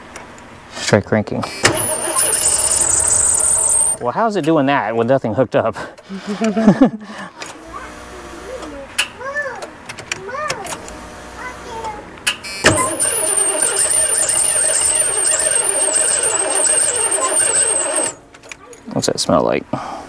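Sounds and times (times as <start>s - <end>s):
starter cranking engine: 1.5s - 4.0s, 12.5s - 18.2s.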